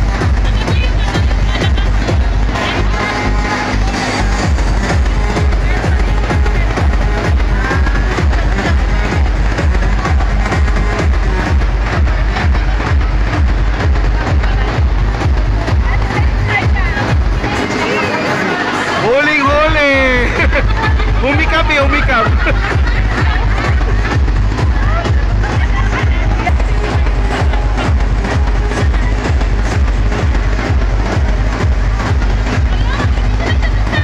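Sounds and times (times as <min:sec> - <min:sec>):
electronic dance music: 0:00.0 - 0:34.0
people's voices: 0:00.0 - 0:34.0.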